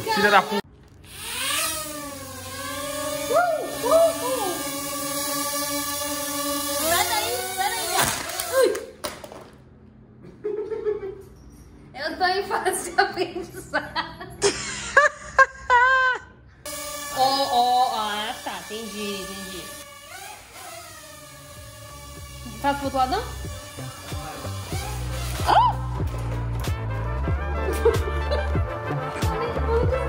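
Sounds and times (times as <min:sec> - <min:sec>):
laughter: 0:10.2 - 0:11.4, 0:12.8 - 0:16.4, 0:27.6 - 0:28.6.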